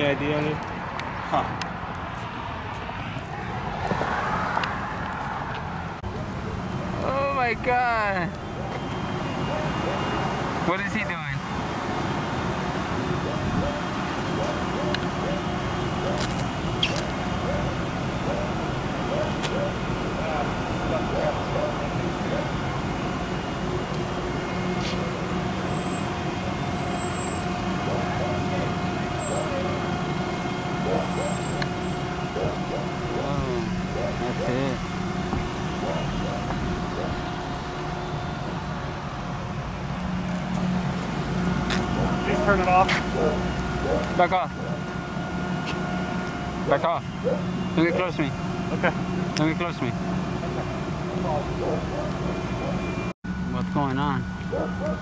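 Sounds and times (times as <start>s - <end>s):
traffic noise: 0.0s - 55.0s.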